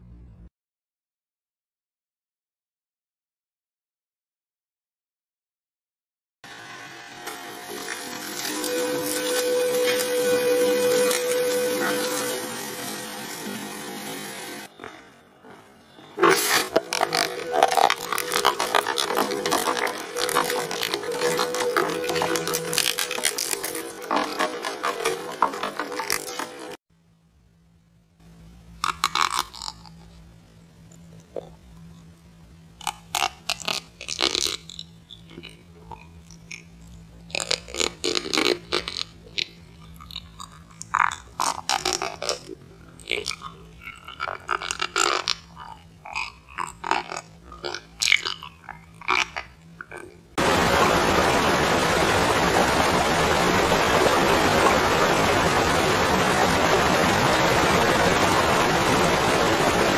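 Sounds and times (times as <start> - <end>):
shredder running steady tone: 6.5 - 14.7, 16.7 - 26.8, 50.4 - 59.9
metal can crunching: 16.2 - 26.8
sea grapes crunched between teeth: 28.8 - 30.0
lip and tongue clicks: 28.8 - 30.1, 32.8 - 50.2.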